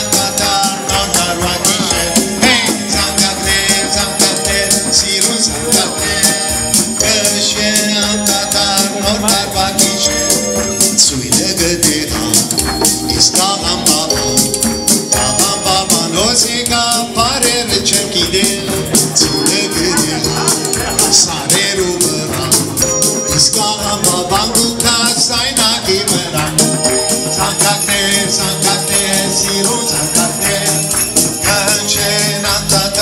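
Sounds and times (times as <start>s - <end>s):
jingle bells shaking: 0.0s - 33.0s
keyboard playing a tune: 0.0s - 33.0s
man singing: 0.0s - 33.0s
maracas shaking: 0.0s - 33.0s.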